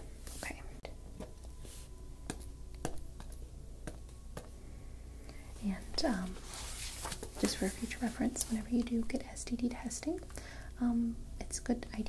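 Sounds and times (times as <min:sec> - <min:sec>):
woman whispering: 0:00.3 - 0:01.0, 0:07.4 - 0:12.0.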